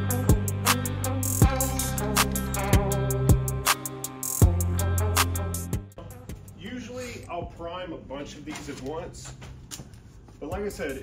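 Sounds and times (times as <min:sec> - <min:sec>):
man speaking: 0:06.0 - 0:09.4, 0:10.4 - 0:11.0.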